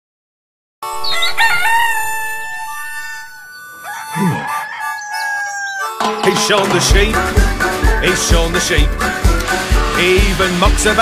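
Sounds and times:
rooster crowing: 0.9 - 6.1
held musical chord: 6.0 - 10.3.

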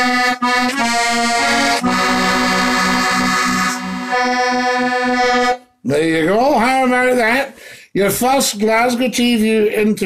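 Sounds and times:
accordion playing chords: 0.0 - 5.8.

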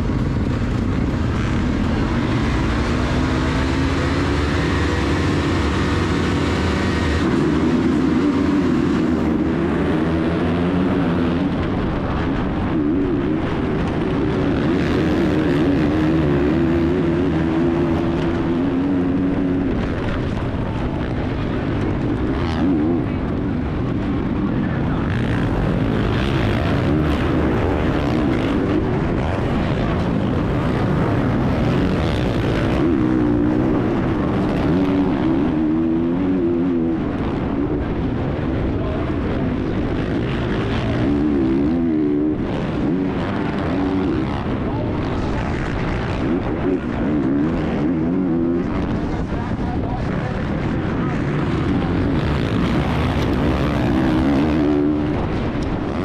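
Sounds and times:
motocross bike engine revving: 0.0 - 38.2, 38.8 - 56.0
other motorbikes racing: 0.0 - 56.0.

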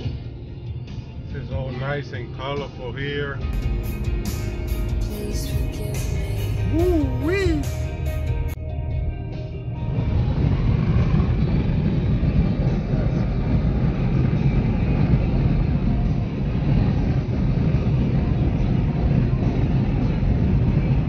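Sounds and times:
road and wind noise in vehicle: 0.0 - 21.0.

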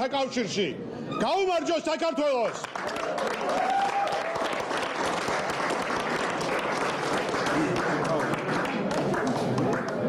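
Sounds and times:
people applauding: 2.4 - 10.0.

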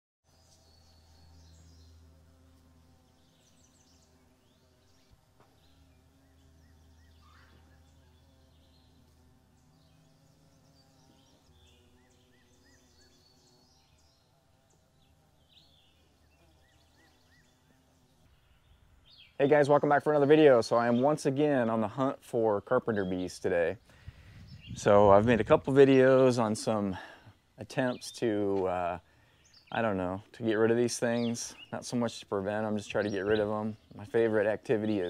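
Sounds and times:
small birds chirping: 0.2 - 35.0
low steady hum: 0.3 - 35.0.

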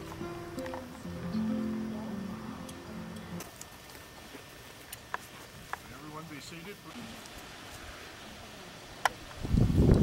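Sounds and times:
acoustic guitar music: 0.0 - 3.7.

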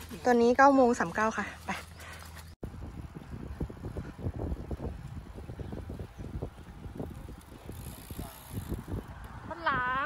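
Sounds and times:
wind buffeting microphone: 2.6 - 10.0.

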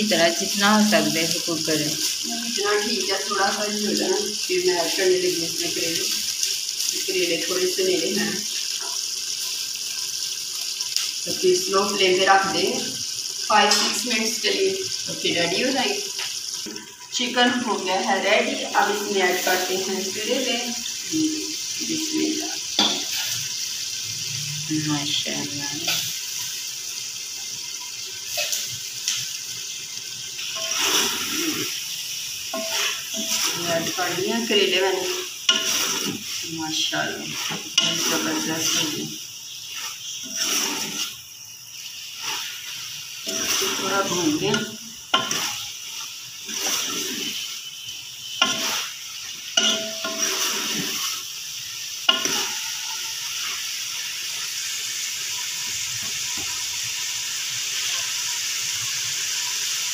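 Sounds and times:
gravy bubbling and sizzling in pot: 0.0 - 59.9
metal spoon scraping pot: 30.6 - 31.8, 32.5 - 34.2, 35.5 - 36.4, 37.3 - 38.9, 39.7 - 41.2, 43.3 - 45.7, 49.6 - 51.2, 52.1 - 53.1
person talking: 33.5 - 35.2, 36.4 - 39.2, 43.6 - 44.8.

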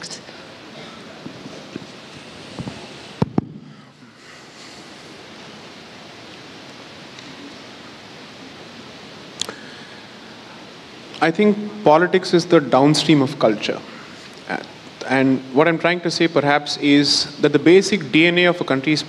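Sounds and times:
auditorium room tone hiss: 0.0 - 19.0.

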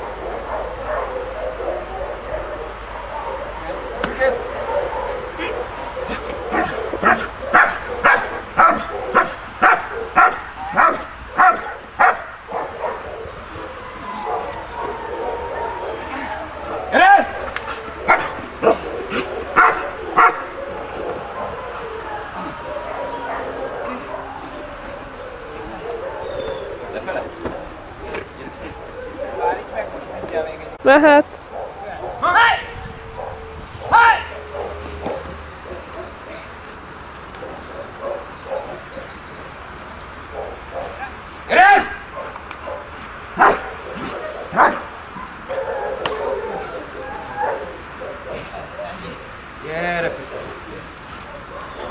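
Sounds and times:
dog barking: 0.0 - 30.6, 31.5 - 36.5, 37.3 - 39.2, 40.2 - 49.4, 51.2 - 51.9.

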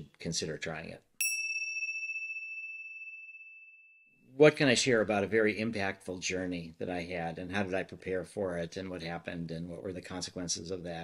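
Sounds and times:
bright chime ringing: 1.2 - 4.2.

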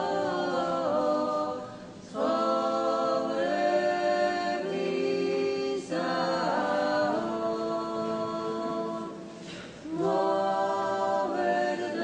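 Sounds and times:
choir singing chant: 0.0 - 12.0.

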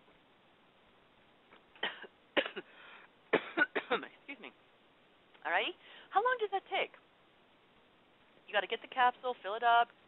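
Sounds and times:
person coughing: 1.8 - 4.1.

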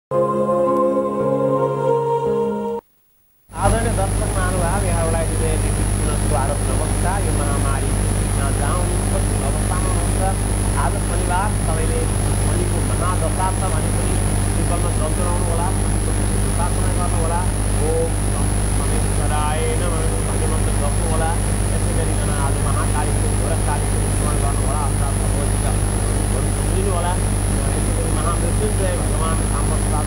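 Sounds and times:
faint high whine: 0.1 - 30.0
man talking: 3.5 - 30.0.

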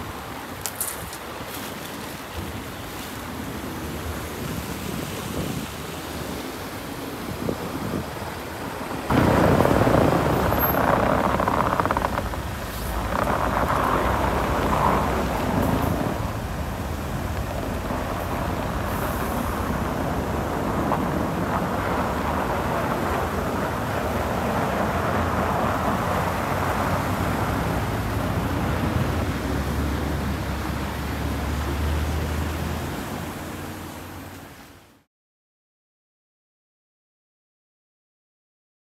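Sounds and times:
vehicle and street noise: 0.0 - 35.1
sudden rush: 9.1 - 28.5.

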